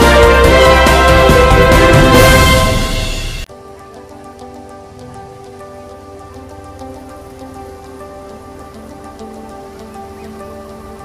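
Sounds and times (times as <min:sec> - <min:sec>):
ambient synth music: 0:00.0 - 0:11.0
rain-like hiss: 0:03.0 - 0:11.0.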